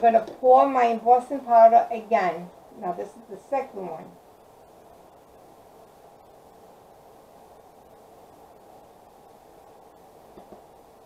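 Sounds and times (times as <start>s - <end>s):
room noise hiss: 0.0s - 11.0s
faint tap: 10.3s - 10.6s.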